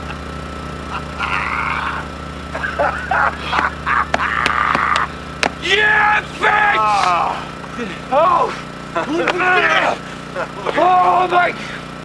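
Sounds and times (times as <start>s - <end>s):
men laughing and shouting: 0.0s - 11.9s
low hum: 0.0s - 12.0s.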